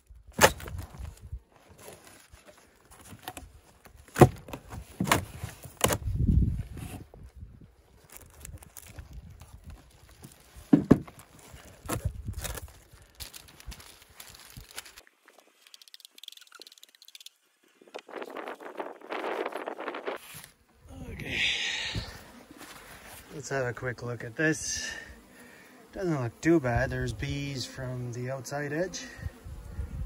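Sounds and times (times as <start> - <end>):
rustling: 7.8 - 17.2, 22.1 - 23.4
plastic hive parts knocking: 10.7 - 11.2.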